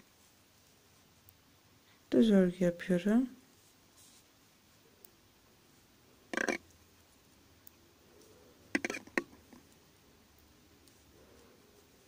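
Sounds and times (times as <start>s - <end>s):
knitting needles clicking: 6.3s - 6.8s, 8.7s - 11.0s.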